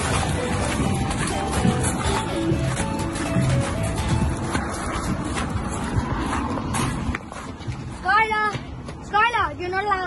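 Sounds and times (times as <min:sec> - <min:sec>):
rustling from people running: 0:00.0 - 0:10.0.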